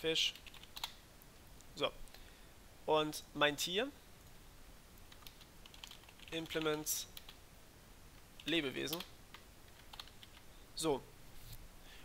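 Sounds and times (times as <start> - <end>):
faint keyboard typing: 0.3 - 1.0, 5.0 - 7.4, 8.2 - 10.5.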